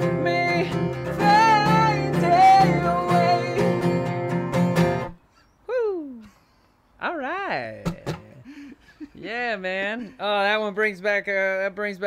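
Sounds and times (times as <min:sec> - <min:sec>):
person singing: 0:00.0 - 0:04.4
acoustic guitar: 0:00.0 - 0:05.5, 0:07.8 - 0:08.5.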